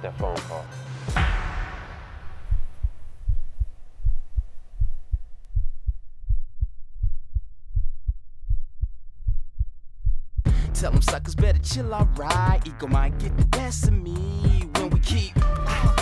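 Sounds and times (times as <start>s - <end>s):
reverberant hit tail: 1.1s - 4.7s
heartbeat thumps: 1.2s - 14.7s.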